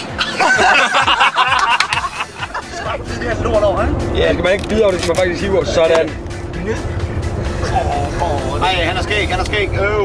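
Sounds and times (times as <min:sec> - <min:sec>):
bus engine and tyre rumble: 0:00.0 - 0:10.0
music playing: 0:00.0 - 0:10.0.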